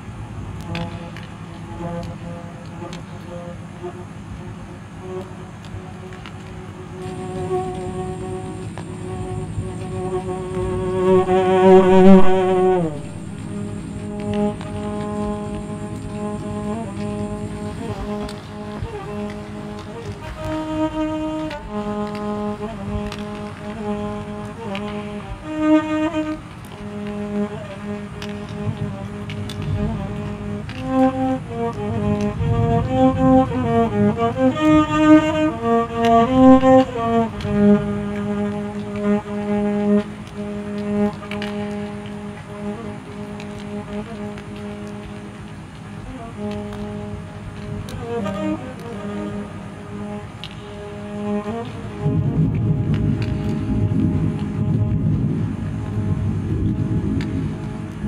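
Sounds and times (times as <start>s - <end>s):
bowed violin long notes: 0.0s - 58.0s
steady noise track: 0.0s - 58.0s
faint clicks: 0.6s - 58.0s.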